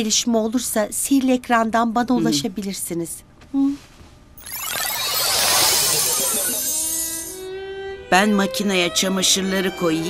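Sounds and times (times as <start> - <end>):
magic sparkle chime tinkles: 4.4 - 7.4.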